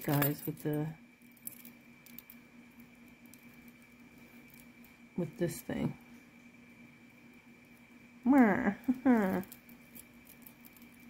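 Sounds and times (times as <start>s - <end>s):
faint steady hum: 0.0s - 11.0s
chain bracelet clicking: 9.4s - 11.0s.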